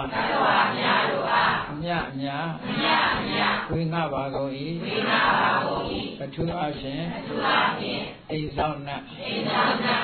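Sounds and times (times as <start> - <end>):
group of voices reciting in unison: 0.0 - 10.0
person leading a recitation: 1.6 - 5.1, 5.8 - 7.3, 8.0 - 9.9.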